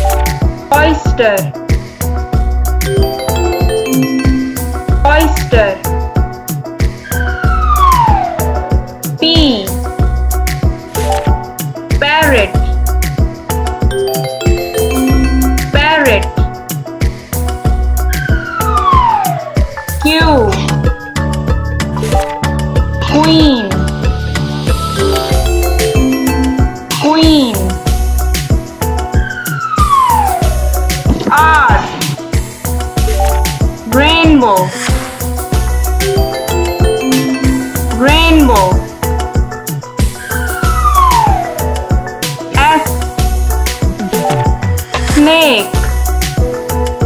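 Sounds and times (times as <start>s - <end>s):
children's background music: 0.0s - 47.0s
falling whistle tone: 7.1s - 8.4s, 40.3s - 41.6s.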